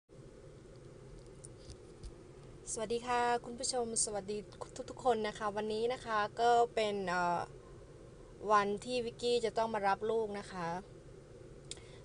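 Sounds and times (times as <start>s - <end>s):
faint steady low hum: 0.1s - 12.0s.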